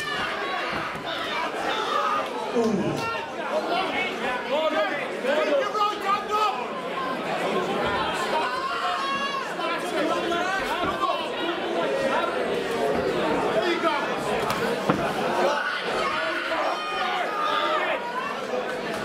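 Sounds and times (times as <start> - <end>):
crowd talking and calling out: 0.0 - 19.0.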